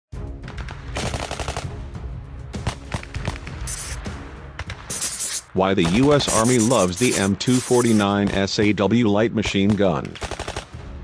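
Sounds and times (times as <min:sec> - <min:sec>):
background music: 0:00.1 - 0:11.0
machine-gun fire: 0:01.0 - 0:01.7, 0:10.2 - 0:10.8.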